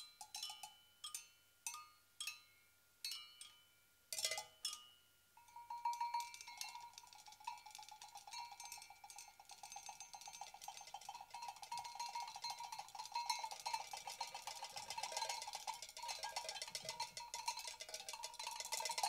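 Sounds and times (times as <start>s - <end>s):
drumstick rattling on metal: 5.6s - 19.0s.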